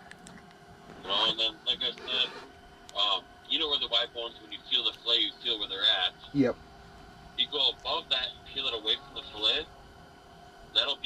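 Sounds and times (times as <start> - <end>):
man talking: 1.0 - 2.4, 3.0 - 6.6, 7.4 - 9.6, 10.8 - 11.0.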